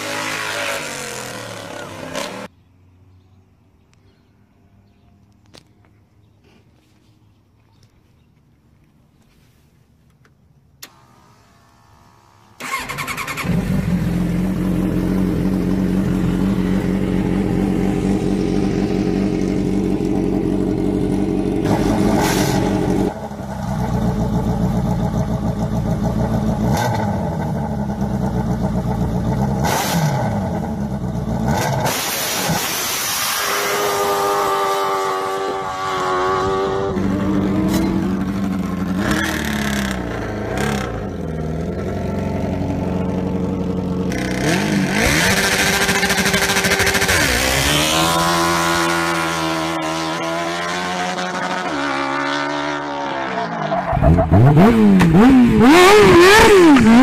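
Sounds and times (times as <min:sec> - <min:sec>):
engines running and revving: 0:00.0 - 0:02.5, 0:12.6 - 0:57.0.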